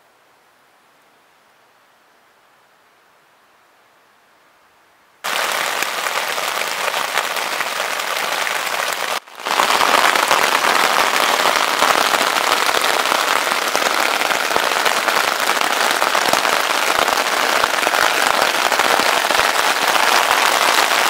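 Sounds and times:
rain pattering on a tent: 0:05.2 - 0:21.0.

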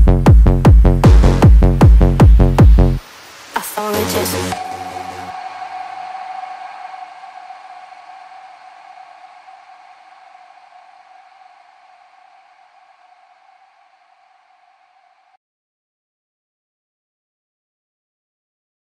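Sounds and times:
noise hiss: 0:01.6 - 0:15.4
held synth tone: 0:04.1 - 0:14.9.

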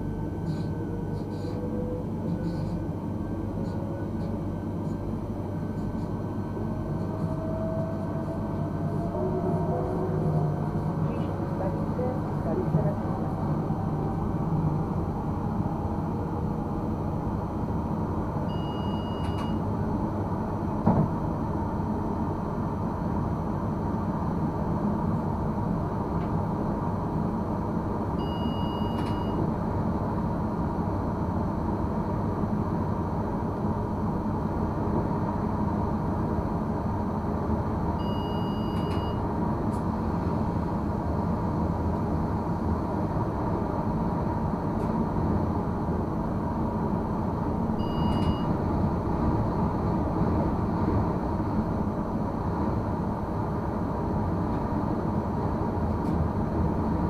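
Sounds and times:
faint two-tone beeps: 0:18.5 - 0:19.6, 0:28.2 - 0:29.4, 0:38.0 - 0:39.2, 0:47.8 - 0:48.5
train wheels rumbling on rail: 0:19.2 - 0:28.2.

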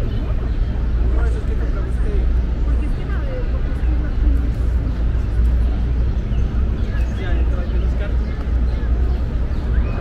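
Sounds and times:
faint voices of passersby: 0:00.0 - 0:10.0
steady low rumble: 0:00.0 - 0:10.0.

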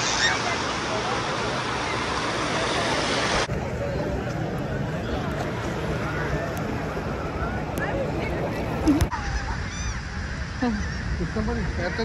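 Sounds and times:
gulls calling: 0:00.0 - 0:03.5, 0:06.0 - 0:12.0
rumble of wind or surf: 0:00.0 - 0:12.0.

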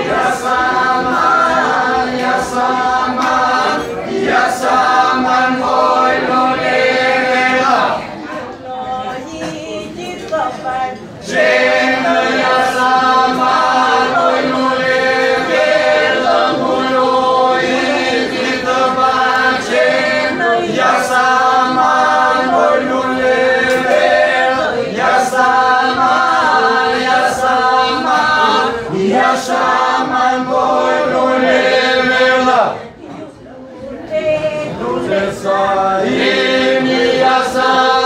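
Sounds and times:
lead voices singing melody: 0:00.0 - 0:38.0.

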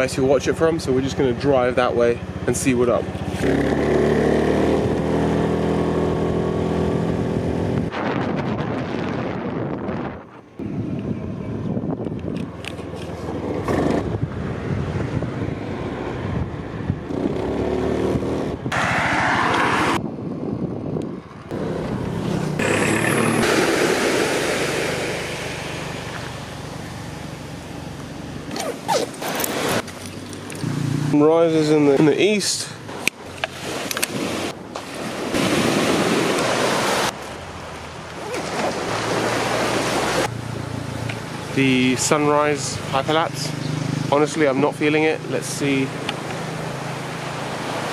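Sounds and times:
road noise: 0:00.0 - 0:47.9
wind: 0:00.0 - 0:47.9
motor scooter engine running: 0:21.5 - 0:23.6.

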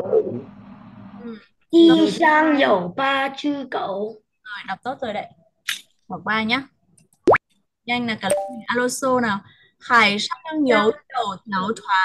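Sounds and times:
electronic plop sound effect: 0:08.3 - 0:08.8.

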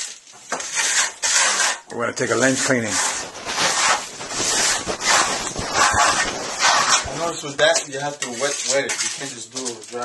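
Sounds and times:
steel trowel scraping plaster: 0:00.0 - 0:10.0.

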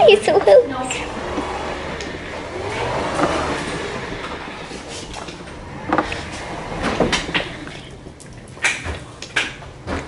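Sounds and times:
wheelchair motor whir: 0:00.0 - 0:08.7
wheel rumble: 0:00.0 - 0:10.0.

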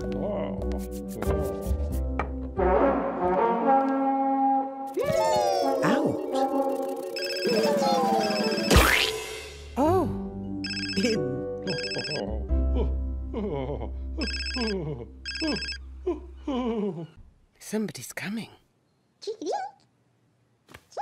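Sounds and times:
telephone double ring: 0:07.2 - 0:07.6.

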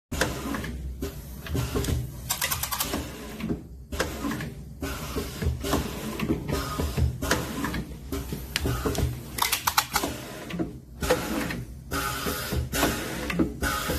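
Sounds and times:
mechanical clacks: 0:01.8 - 0:03.5, 0:08.6 - 0:11.2.

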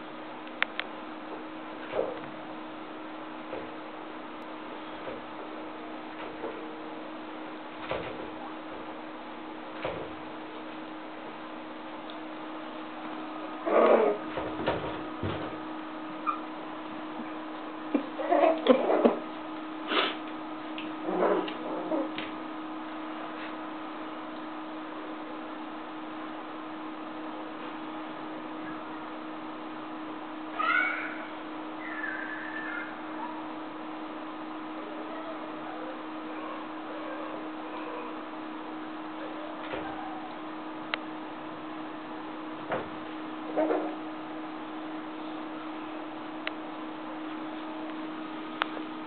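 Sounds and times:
steady hum and hiss: 0:00.0 - 0:49.0
cat meowing: 0:30.6 - 0:33.0.

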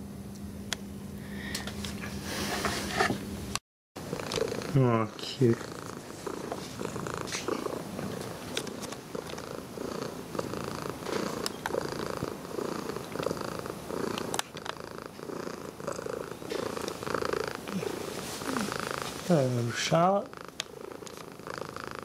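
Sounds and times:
cat purring: 0:04.0 - 0:22.0.

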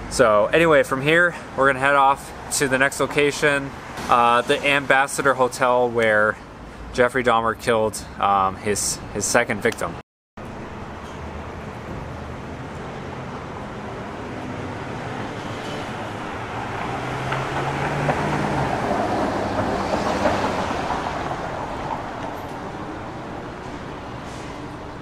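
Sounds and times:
road traffic noise: 0:00.0 - 0:25.0.

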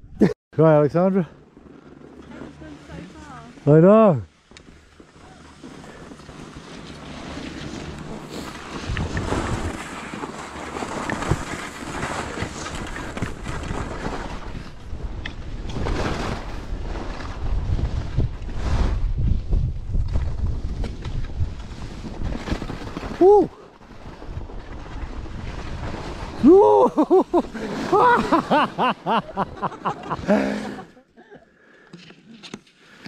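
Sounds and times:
skis scraping over snow: 0:01.0 - 0:30.8
wind buffeting microphone: 0:16.7 - 0:22.4.

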